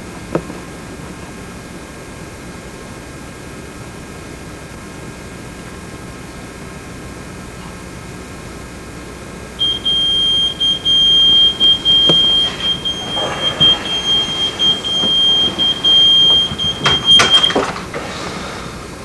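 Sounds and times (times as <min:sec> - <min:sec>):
digital alarm clock beeping: 0:09.6 - 0:17.6.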